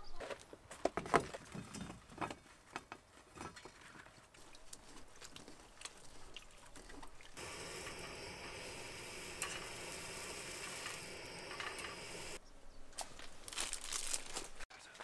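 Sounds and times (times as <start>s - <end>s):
gas stove hissing: 7.4s - 12.4s.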